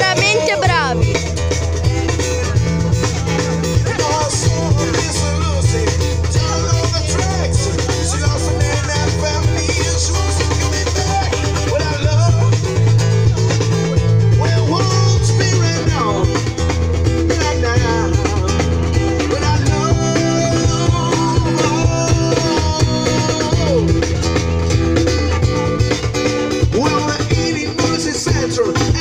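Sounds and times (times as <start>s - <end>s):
guitar: 0.0s - 29.0s
steady bass line: 0.0s - 29.0s
person singing: 3.3s - 24.4s.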